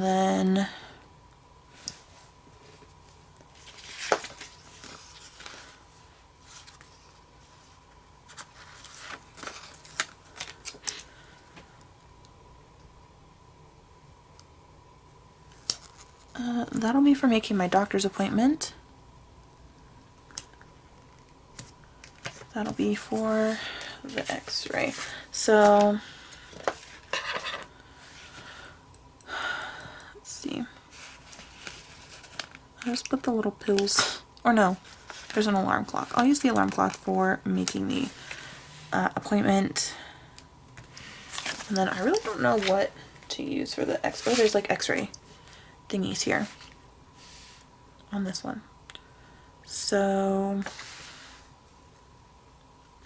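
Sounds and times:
paper rustling: 0:03.5 - 0:05.8, 0:08.3 - 0:11.0, 0:30.9 - 0:32.6, 0:34.8 - 0:37.0, 0:40.8 - 0:43.0, 0:44.1 - 0:44.6.

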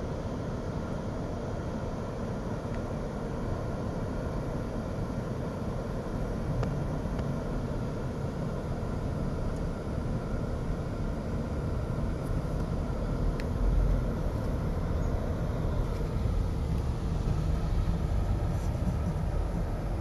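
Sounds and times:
car driving engine and tyre noise: 0:00.0 - 0:20.0.

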